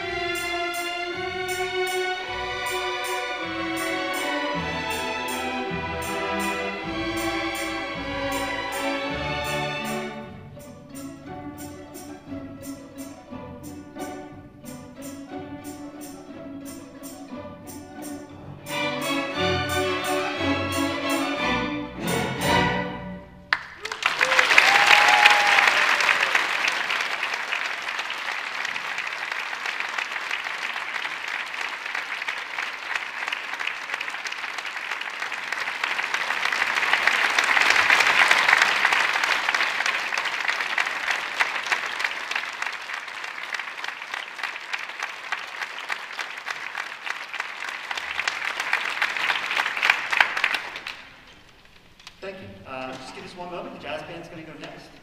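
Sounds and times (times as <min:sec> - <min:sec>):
audience applauding: 0:23.5 - 0:51.5.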